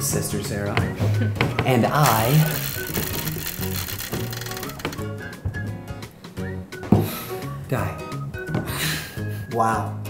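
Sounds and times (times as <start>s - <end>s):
plastic spinner clicking: 2.0s - 5.1s.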